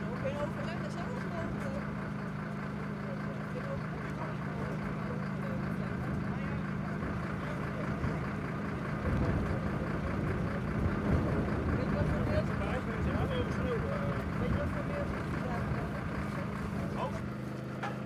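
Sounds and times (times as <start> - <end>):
engine humming: 0.0 - 18.0
loud low rumbling: 0.0 - 18.0.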